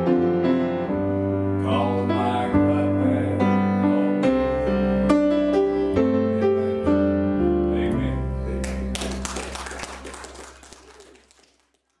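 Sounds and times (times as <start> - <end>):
congregation applauding: 8.6 - 12.0.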